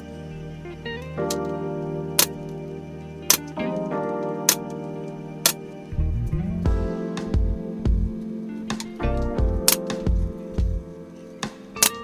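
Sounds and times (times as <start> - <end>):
slide guitar music: 0.6 - 6.7.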